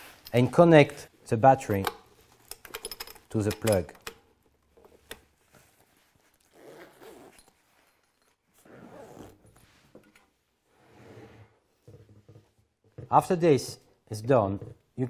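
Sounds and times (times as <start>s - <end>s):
fabric zipper being pulled: 6.4s - 7.4s, 8.6s - 9.5s.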